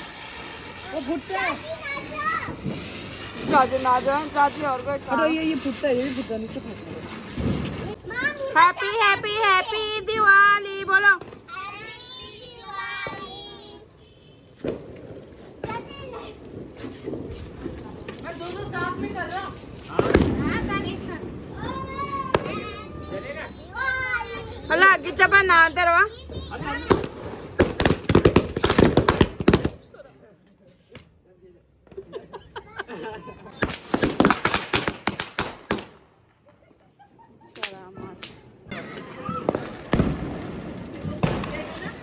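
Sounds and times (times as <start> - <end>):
firecracker bang: 0.0 - 29.9, 33.2 - 36.4, 37.6 - 42.0
children's voices: 0.2 - 2.9, 7.8 - 10.3, 11.4 - 14.0, 15.6 - 16.6, 20.4 - 25.2, 26.0 - 27.2, 38.7 - 40.0.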